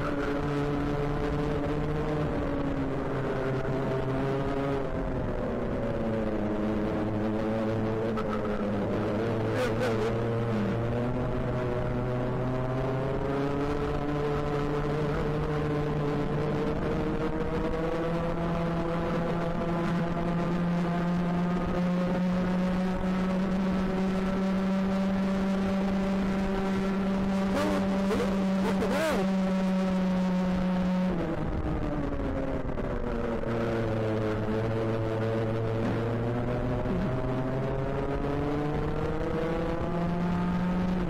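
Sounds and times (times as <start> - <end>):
kart engine at full throttle: 0.0 - 41.0.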